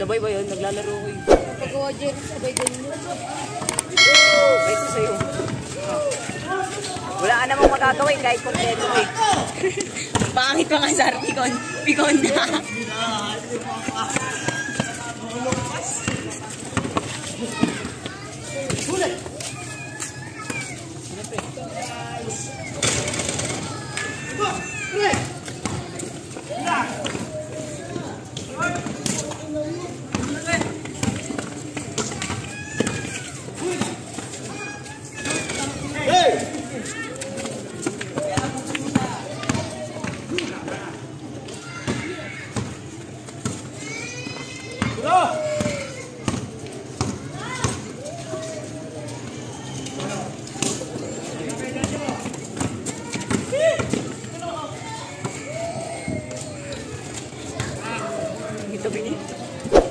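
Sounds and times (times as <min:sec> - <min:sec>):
players calling and shouting: 0:04.0 - 0:06.4.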